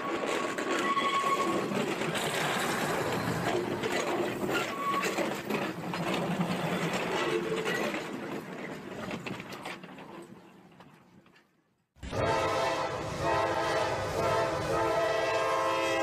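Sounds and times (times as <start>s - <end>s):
train running on tracks: 0.0s - 16.0s.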